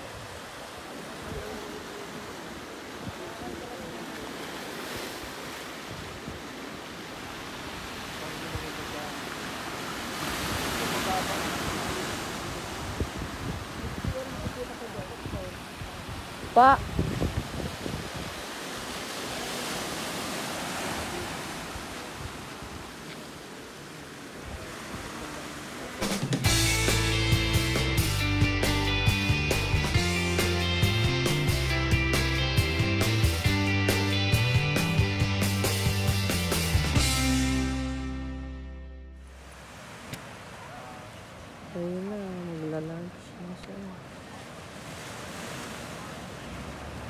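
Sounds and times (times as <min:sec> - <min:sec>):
ocean surf breaking over rocks: 0:00.0 - 0:26.5, 0:39.3 - 0:47.0.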